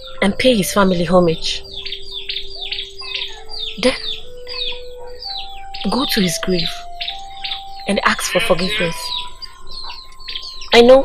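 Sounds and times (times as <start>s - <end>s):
birds chirping: 0.0s - 11.0s
low held tone: 0.0s - 11.0s.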